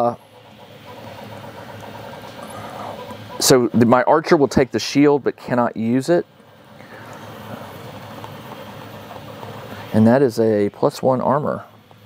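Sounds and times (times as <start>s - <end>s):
room noise hum: 0.0s - 12.0s.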